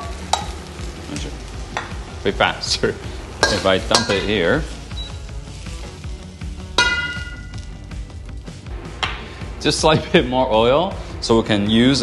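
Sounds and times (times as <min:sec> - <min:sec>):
spatula clanging on wok: 0:00.0 - 0:00.6, 0:01.7 - 0:02.0, 0:03.4 - 0:05.1, 0:06.7 - 0:07.7
metal spatula scraping a wok: 0:03.4 - 0:06.1.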